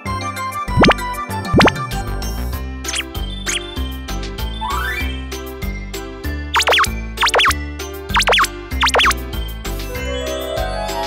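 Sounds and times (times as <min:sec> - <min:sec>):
cheerful children's music: 0:00.0 - 0:11.0
cartoon bloop sound effect: 0:00.8 - 0:01.8, 0:02.9 - 0:03.6, 0:06.6 - 0:07.6, 0:08.2 - 0:09.2.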